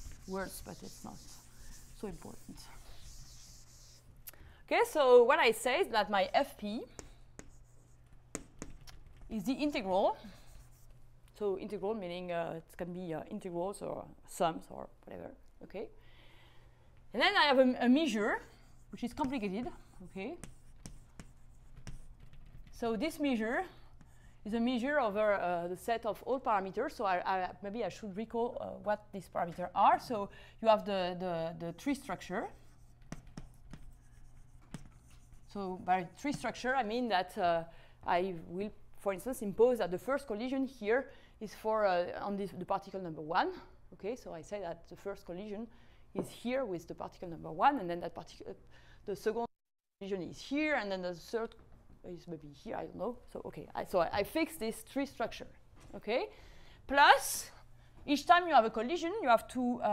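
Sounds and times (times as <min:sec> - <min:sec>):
chalk writing on a blackboard: 0:00.0 - 0:04.1, 0:06.8 - 0:08.8, 0:10.2 - 0:11.0, 0:18.4 - 0:22.6, 0:31.9 - 0:36.7.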